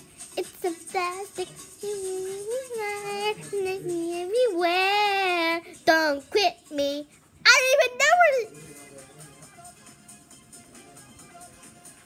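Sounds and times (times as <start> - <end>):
girl singing: 0.4 - 8.5.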